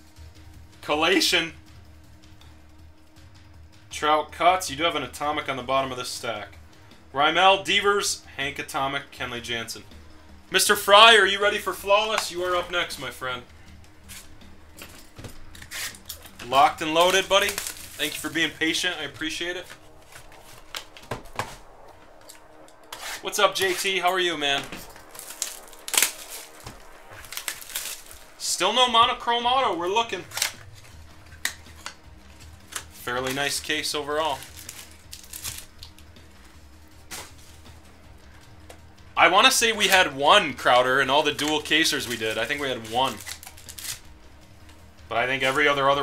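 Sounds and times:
cards and wrapper rustling: 0:10.2 - 0:29.2, 0:29.8 - 0:37.8, 0:39.4 - 0:44.7.

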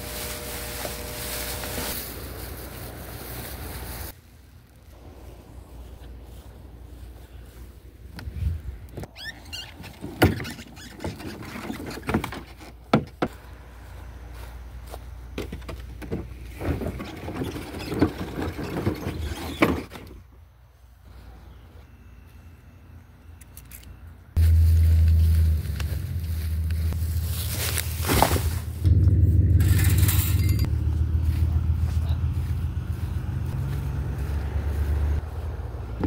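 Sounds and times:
low mechanical hum: 0:00.0 - 0:19.2, 0:19.9 - 0:36.0.

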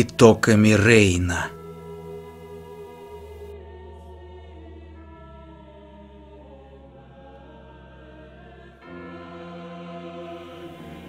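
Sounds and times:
slow choir-like held chords: 0:00.0 - 0:11.0.

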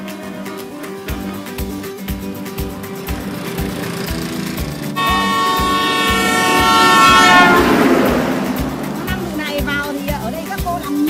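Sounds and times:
background music with steady beat: 0:00.0 - 0:11.0
sustained horn blast: 0:02.3 - 0:10.2
rushing noise: 0:02.5 - 0:10.2.

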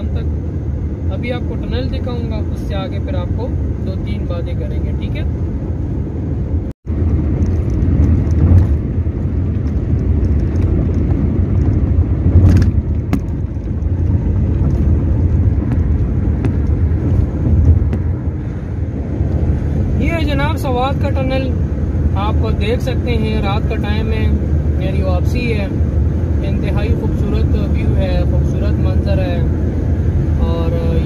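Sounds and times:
car road and engine rumble: 0:00.0 - 0:31.0.

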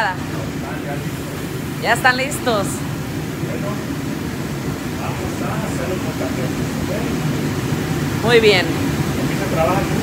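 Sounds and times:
gas grill burners running: 0:00.0 - 0:10.0
ventilation roar: 0:00.0 - 0:10.0.

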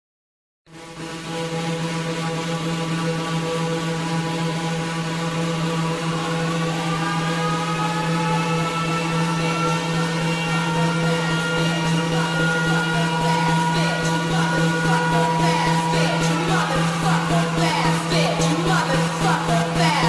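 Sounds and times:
buzzing synth drone: 0:00.7 - 0:20.0
rising synth tones: 0:00.7 - 0:20.0.

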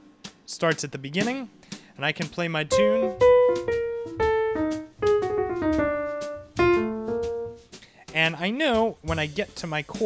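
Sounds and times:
piano notes and chords: 0:02.7 - 0:07.7.

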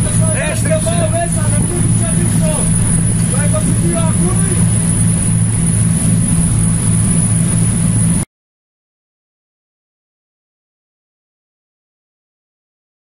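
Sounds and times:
voices: 0:00.0 - 0:04.7
boat engines droning: 0:00.0 - 0:08.2
high-pitched whine: 0:00.0 - 0:08.2.

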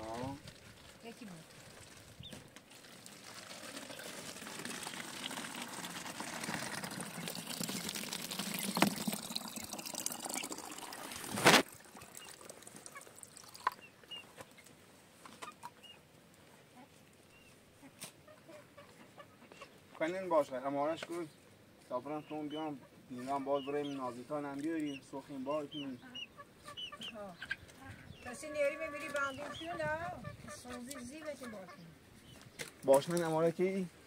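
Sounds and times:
water pouring into plastic bottle: 0:00.0 - 0:13.9
chickens clucking: 0:12.8 - 0:16.1, 0:16.8 - 0:20.0, 0:22.0 - 0:32.4.

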